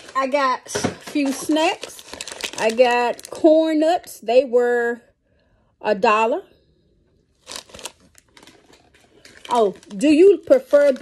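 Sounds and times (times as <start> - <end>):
plastic bag crinkling: 0.0 - 4.2, 7.4 - 11.0.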